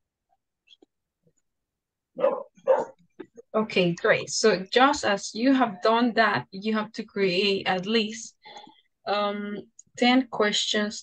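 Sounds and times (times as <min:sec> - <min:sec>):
dog barking: 0:02.2 - 0:03.0.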